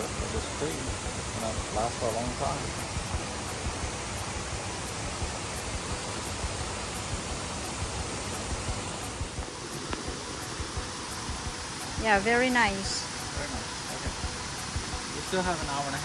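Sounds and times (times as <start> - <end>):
creek running over rocks: 0.0 - 16.0.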